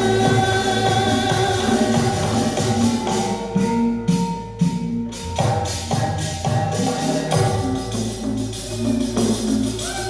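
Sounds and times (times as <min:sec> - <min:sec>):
gamelan metal keys ringing: 0:05.1 - 0:10.0.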